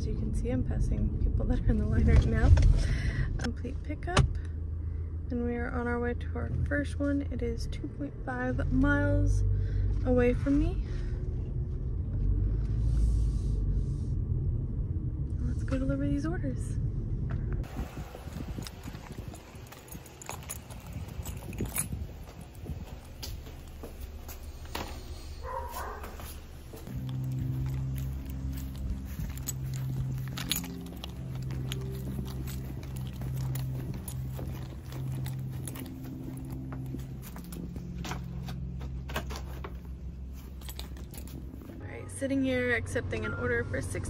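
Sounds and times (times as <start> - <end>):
footsteps: 17.6 - 42.0
keys jangling: 18.2 - 24.6, 25.4 - 41.8
background music with low bass: 25.5 - 44.0.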